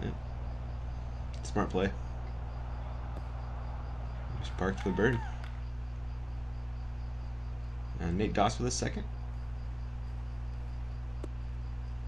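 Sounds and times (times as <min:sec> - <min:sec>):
faint insect chirping: 0:00.0 - 0:12.0
steady low hum: 0:00.0 - 0:12.0.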